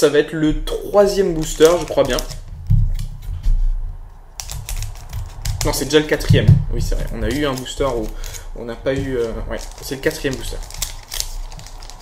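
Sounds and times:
foil pack crinkling: 0:01.0 - 0:03.2, 0:04.4 - 0:12.0.

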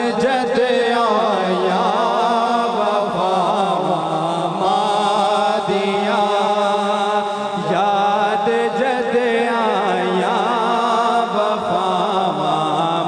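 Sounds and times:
man singing devotional song: 0:00.0 - 0:13.0.

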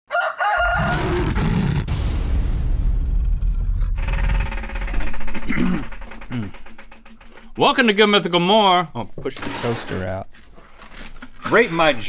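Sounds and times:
deep low rumble: 0:01.2 - 0:07.5.

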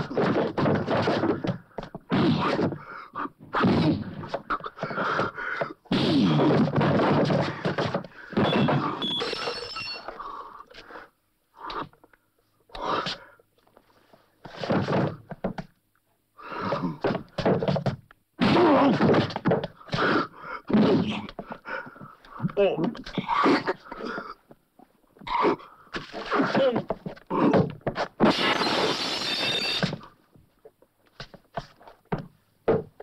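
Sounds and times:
punches and heavy thuds: 0:00.0 - 0:02.8, 0:05.9 - 0:09.0.

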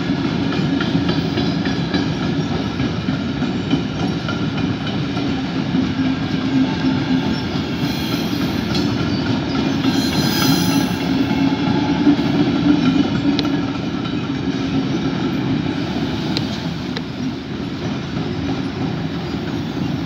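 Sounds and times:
train wheels rumbling on rails: 0:00.0 - 0:20.0
high wheel squeal: 0:06.1 - 0:13.2.

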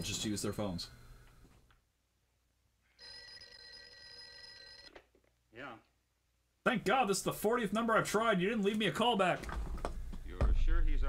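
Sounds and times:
desk telephone ringing: 0:02.9 - 0:05.0.

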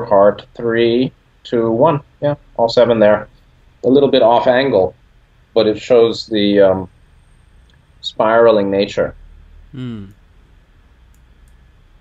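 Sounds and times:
steady low hum: 0:00.0 - 0:12.0
person murmuring hmm: 0:09.8 - 0:10.2
faint clicks: 0:11.0 - 0:11.7.

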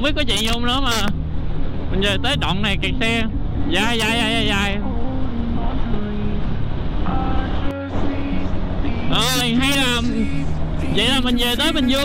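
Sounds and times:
motorcycle engine: 0:00.0 - 0:12.0.

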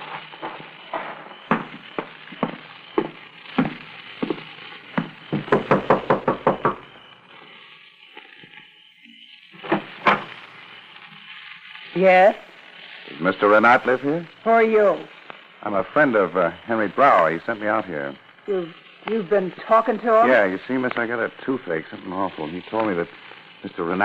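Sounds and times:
footsteps walking: 0:00.0 - 0:05.8.

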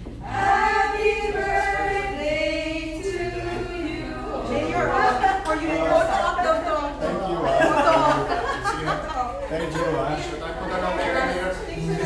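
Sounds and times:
group singing without instruments: 0:00.0 - 0:06.6.

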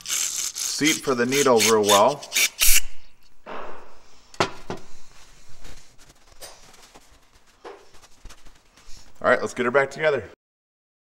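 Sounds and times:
small parts and tools clicking: 0:00.0 - 0:02.8.

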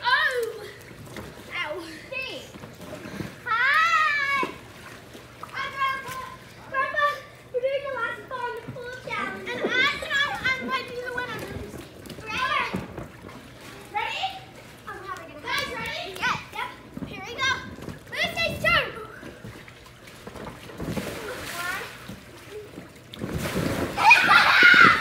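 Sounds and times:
water splashing: 0:00.0 - 0:25.0
children shouting: 0:24.0 - 0:25.0.

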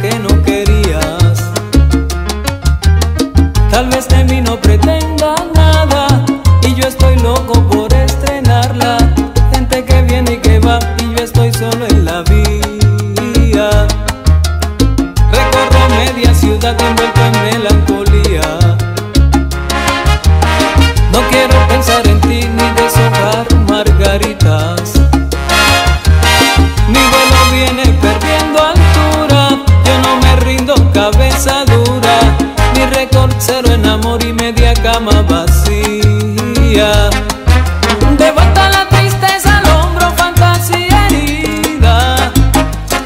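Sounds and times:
salsa music: 0:00.0 - 0:43.0.

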